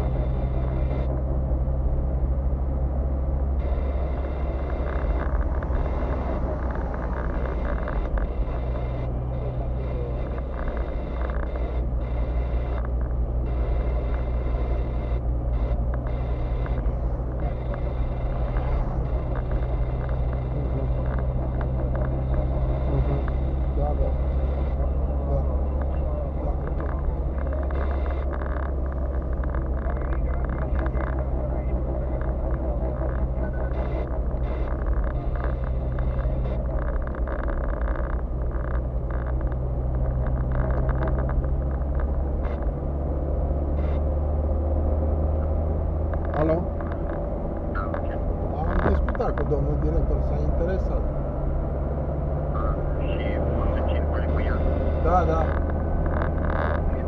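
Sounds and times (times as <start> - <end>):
car engine drone: 0.0 - 57.0
tyres on road: 0.0 - 57.0.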